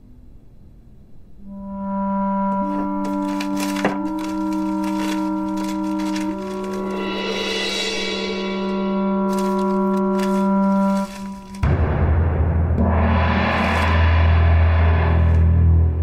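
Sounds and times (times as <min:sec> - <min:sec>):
dramatic synthesizer score: 0:01.4 - 0:14.1
paper rustling: 0:02.5 - 0:11.6.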